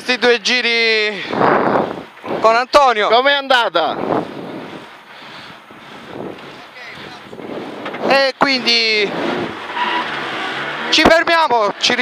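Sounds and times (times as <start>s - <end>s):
car engine at low revs: 4.0s - 12.0s.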